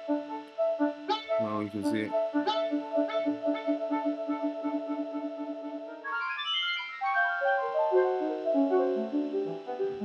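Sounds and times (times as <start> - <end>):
brassy synth arpeggio: 0.0 - 10.0.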